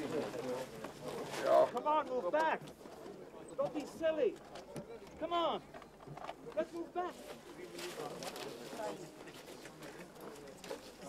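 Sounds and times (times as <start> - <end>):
shuffling: 0.0 - 5.4, 6.0 - 11.0.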